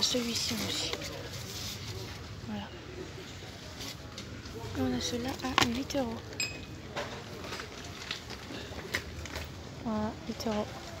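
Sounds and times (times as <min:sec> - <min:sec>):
woman speaking: 0:00.0 - 0:01.1, 0:09.8 - 0:10.8.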